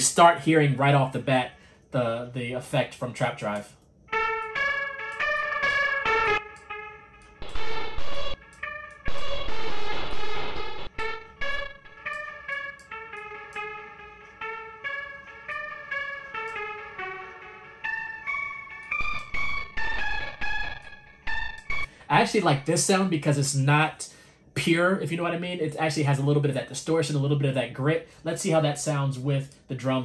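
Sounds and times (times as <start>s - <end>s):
distorted keys melody: 4.1s - 22.9s.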